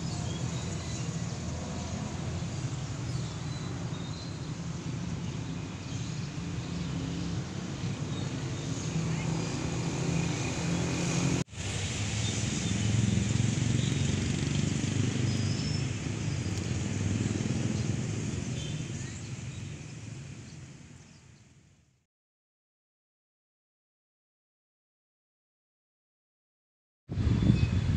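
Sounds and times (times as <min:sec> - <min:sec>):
passing traffic: 0:00.0 - 0:21.7.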